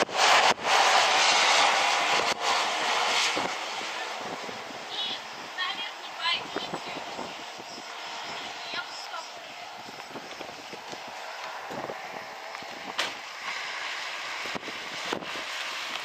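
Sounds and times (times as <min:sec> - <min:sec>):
passing traffic: 0:00.0 - 0:16.0
wind: 0:00.0 - 0:16.0
people's voices: 0:08.3 - 0:10.0.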